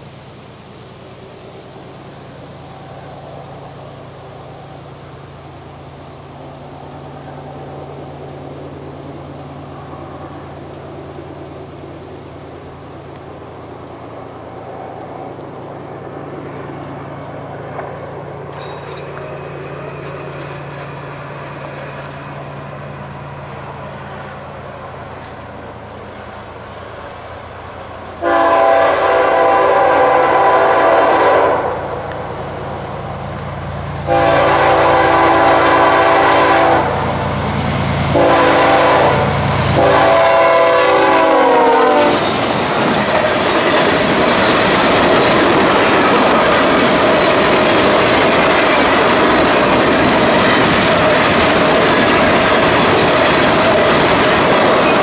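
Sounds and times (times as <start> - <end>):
locomotive engine drone: 0.0 - 55.0
train wheels clickety-clack: 6.3 - 27.9, 32.0 - 55.0
train air horn: 28.2 - 31.9, 34.0 - 37.1, 38.1 - 42.3.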